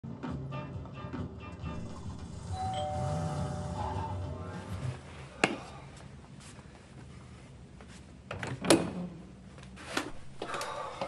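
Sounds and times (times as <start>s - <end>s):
two-note doorbell chime: 2.4s - 4.4s.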